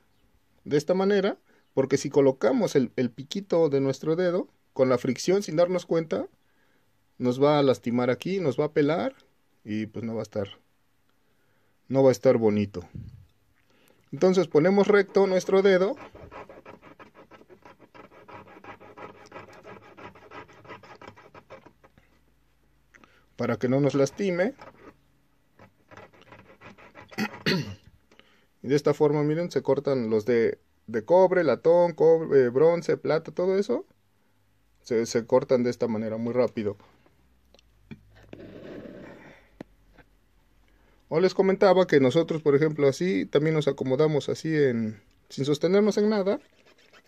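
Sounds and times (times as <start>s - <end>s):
saw rasping through wire: 14.7s - 21.9s, 23.6s - 25.0s, 25.6s - 27.6s.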